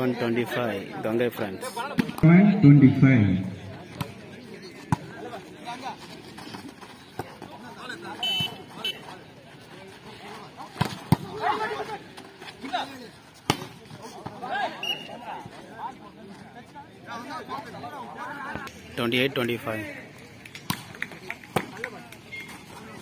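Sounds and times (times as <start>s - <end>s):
voices of players and spectators: 0.0s - 23.0s.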